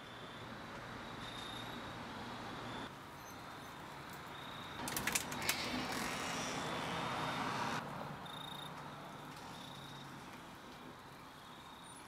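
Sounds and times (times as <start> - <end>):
door creaking: 4.8 - 7.2.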